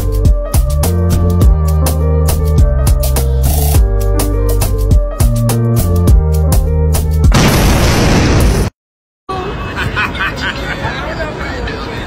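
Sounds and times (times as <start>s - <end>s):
music with drum beat: 0.0s - 7.3s
explosion sound effect: 7.3s - 8.7s
voices: 9.3s - 12.0s.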